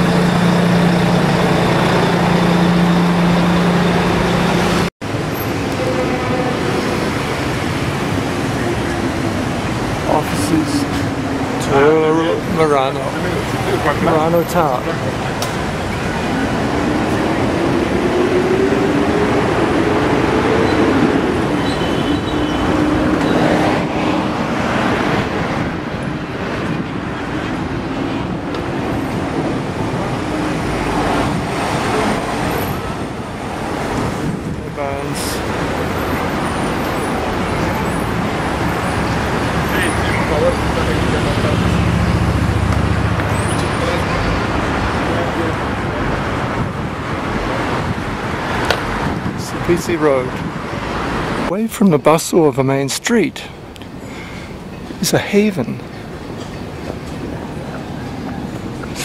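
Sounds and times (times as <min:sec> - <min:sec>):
engine rising in pitch: 0:00.0 - 0:04.9, 0:16.2 - 0:25.2
deep engine rumble passing: 0:00.0 - 0:49.4
cars and buses passing: 0:00.0 - 0:59.0.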